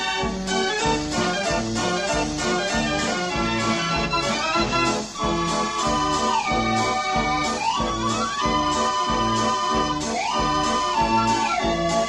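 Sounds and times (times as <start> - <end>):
street organ playing a tune: 0.0 - 12.0.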